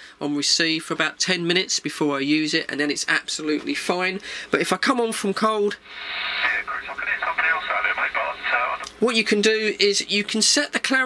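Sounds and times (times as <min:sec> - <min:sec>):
tinny speech over radio speaker: 0:06.0 - 0:09.0.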